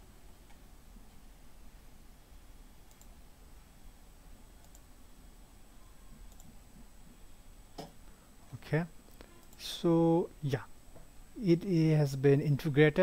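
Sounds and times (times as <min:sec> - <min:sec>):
low room noise: 0:00.0 - 0:13.0
computer mouse clicks: 0:02.9 - 0:03.2, 0:04.6 - 0:04.9, 0:06.3 - 0:06.6.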